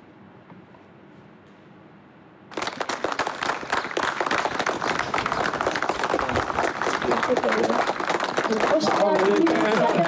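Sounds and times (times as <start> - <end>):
group of people applauding: 2.5 - 10.0.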